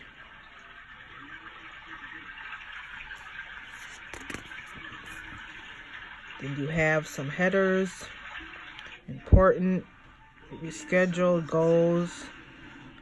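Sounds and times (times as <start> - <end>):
paper rustle: 2.7 - 5.8.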